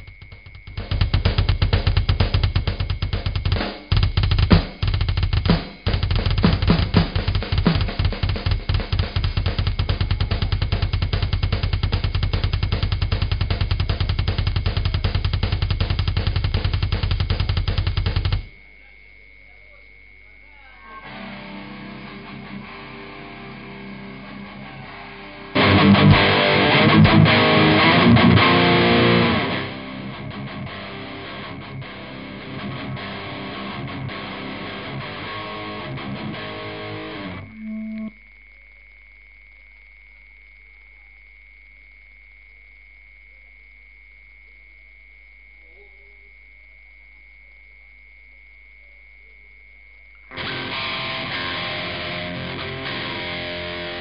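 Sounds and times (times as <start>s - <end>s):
distorted electric guitar: 0.0s - 18.6s, 21.0s - 38.2s, 50.3s - 54.0s
heavy metal band playing: 0.7s - 18.5s, 21.1s - 37.5s, 50.3s - 54.0s
steady high tone: 37.2s - 38.2s.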